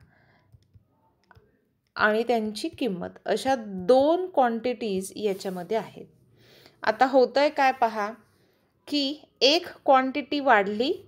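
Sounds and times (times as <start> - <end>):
taps on a touchscreen: 2.2 - 4.3.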